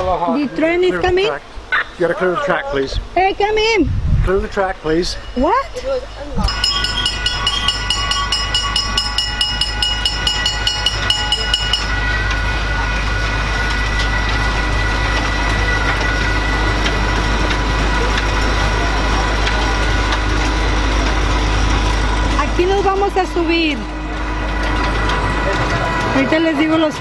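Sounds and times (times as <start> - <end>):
train rolling past: 4.5 - 27.0
bell ringing rapidly: 6.5 - 19.8.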